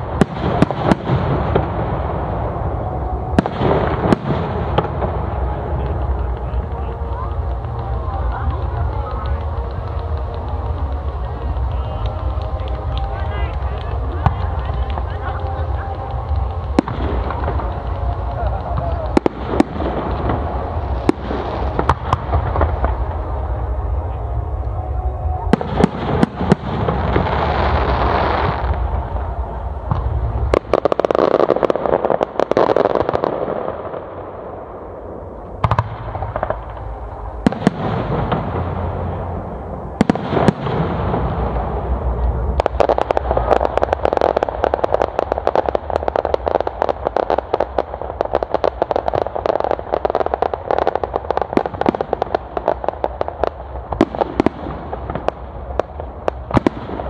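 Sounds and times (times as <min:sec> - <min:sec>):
firework crackling: 0:00.0 - 0:57.0.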